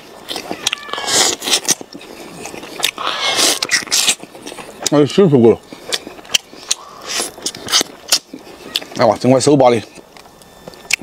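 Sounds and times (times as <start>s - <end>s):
man chewing meat: 0.0s - 11.0s
mouth clicks and smacks: 0.3s - 5.0s, 5.7s - 9.0s, 9.9s - 11.0s
wet sucking noises: 0.6s - 4.6s, 5.7s - 9.0s.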